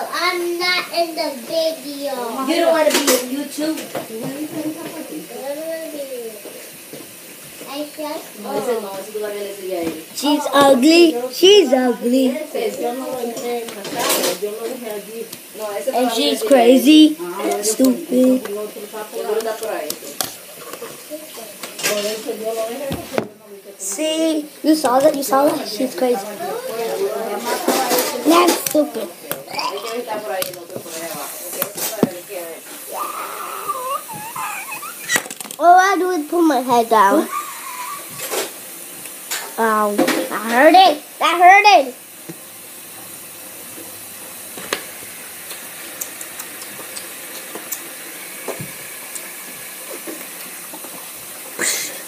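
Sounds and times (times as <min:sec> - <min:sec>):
children's voices: 0:00.0 - 0:06.4, 0:10.2 - 0:14.3, 0:15.9 - 0:18.6, 0:23.8 - 0:30.0, 0:32.9 - 0:38.0
steady hiss: 0:00.0 - 0:52.0.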